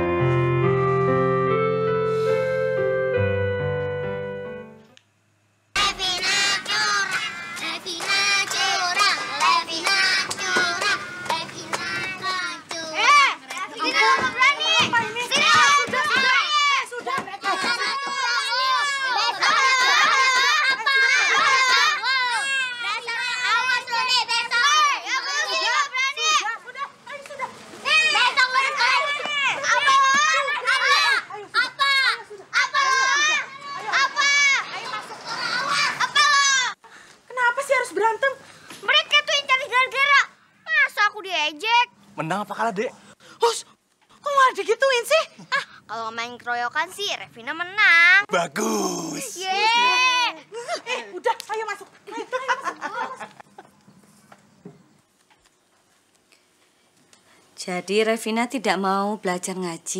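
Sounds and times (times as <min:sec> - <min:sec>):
children chattering and shouting: 0:05.8 - 0:36.8, 0:45.3 - 0:51.2.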